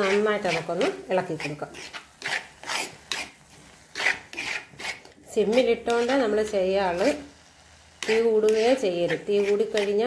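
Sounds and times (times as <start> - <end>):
utensil scraping a pan: 0.0 - 7.3, 8.0 - 10.0.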